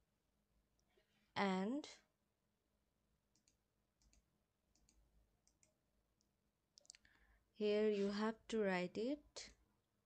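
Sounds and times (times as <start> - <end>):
computer mouse clicks: 3.3 - 7.1.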